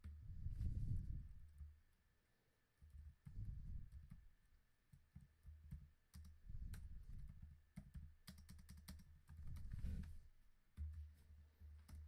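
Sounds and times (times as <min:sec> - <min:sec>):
computer keyboard typing: 0:07.8 - 0:09.6.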